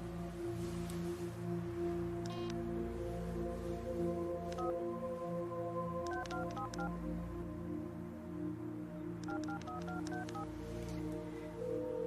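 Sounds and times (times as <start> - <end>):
soft background music: 0.0 - 12.0
keypad dialing beeps: 2.3 - 2.5, 4.5 - 4.7, 6.1 - 6.9, 9.2 - 10.5.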